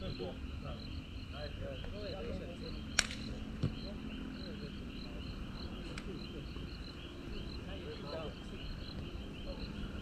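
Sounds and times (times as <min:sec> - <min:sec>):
faint distant voices: 0:00.0 - 0:10.0
insects chirping: 0:00.0 - 0:10.0.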